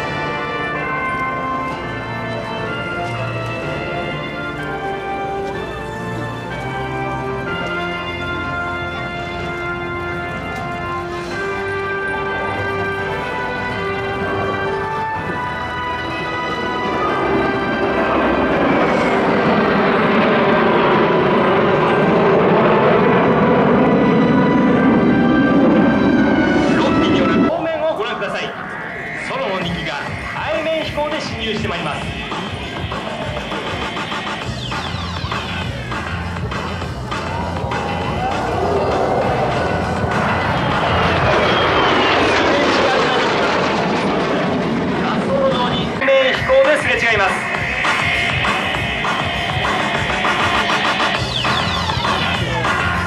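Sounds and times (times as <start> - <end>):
jet aircraft flying past: 0.0 - 53.0
high whine falling in pitch: 15.8 - 53.0.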